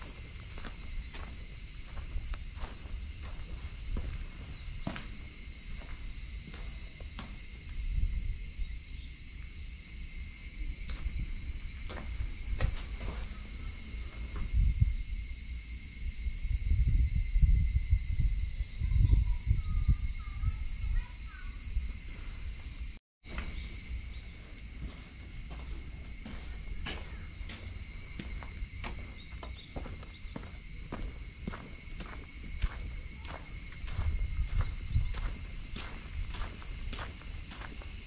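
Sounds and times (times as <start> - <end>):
footsteps on concrete: 0.0 - 7.9, 10.8 - 14.5, 23.2 - 38.0
insects droning: 0.0 - 38.0.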